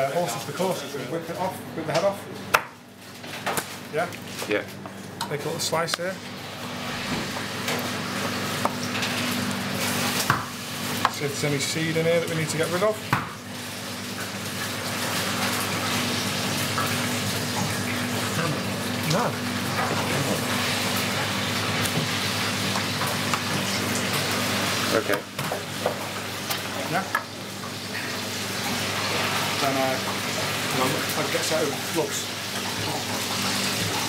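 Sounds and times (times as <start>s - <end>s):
kitchen hum: 0.0s - 34.0s.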